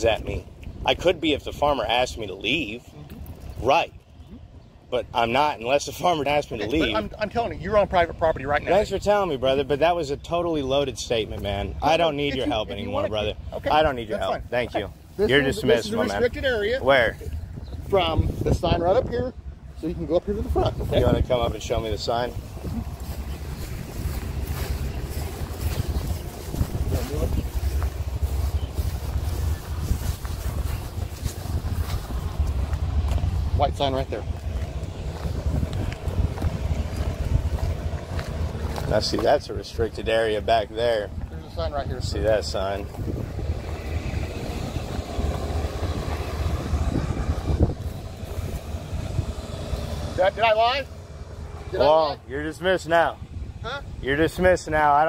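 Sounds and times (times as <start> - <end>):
steady low rumble: 0.0 - 55.0
wind buffeting microphone: 0.0 - 55.0.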